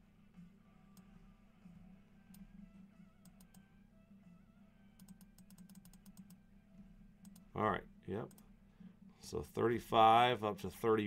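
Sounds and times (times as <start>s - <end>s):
faint background music: 0.0s - 11.0s
keyboard typing: 5.0s - 6.4s.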